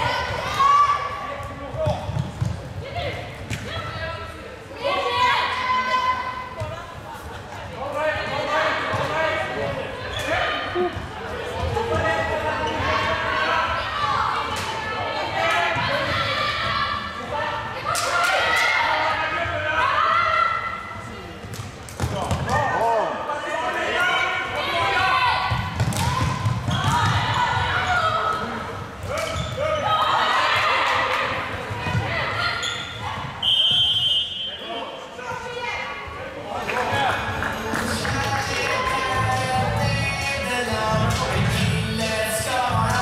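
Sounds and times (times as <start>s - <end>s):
shoes squeaking on floor: 29.2s - 29.9s, 32.4s - 34.5s.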